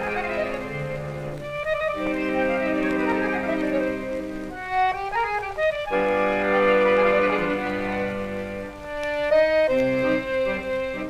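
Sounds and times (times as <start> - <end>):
solo accordion: 0.0 - 11.0.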